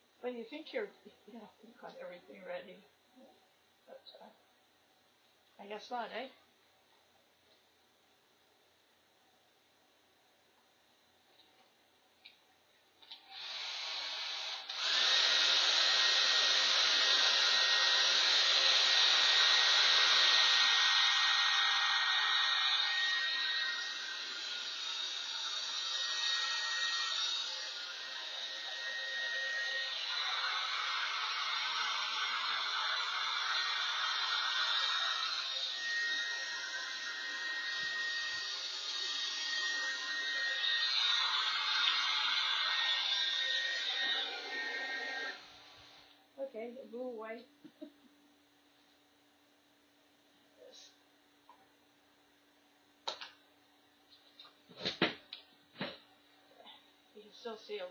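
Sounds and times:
hair dryer blowing with high whine: 13.1 - 46.1.

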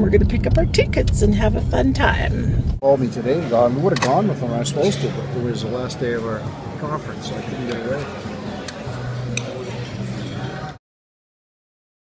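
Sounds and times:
low hum: 0.0 - 2.8.

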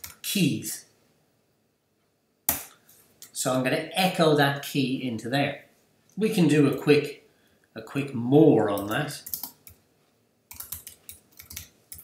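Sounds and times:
computer keyboard keystroke: 8.8 - 9.8, 10.5 - 12.0.

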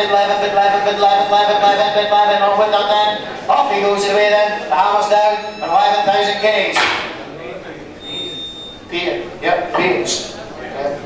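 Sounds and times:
voices murmuring: 0.0 - 11.0
thin high electronic tone: 3.6 - 6.7, 8.0 - 10.1.

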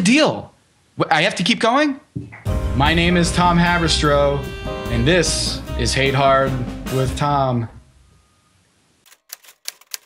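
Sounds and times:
typewriter key clicks: 9.1 - 10.0.

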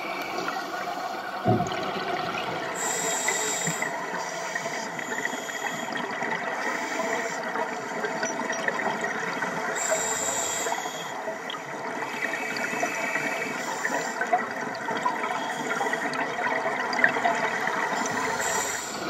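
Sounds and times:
crackling water noise: 0.0 - 19.0.

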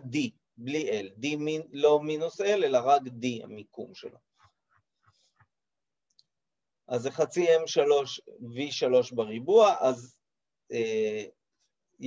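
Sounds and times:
man speaking: 0.0 - 4.2, 6.9 - 11.4.

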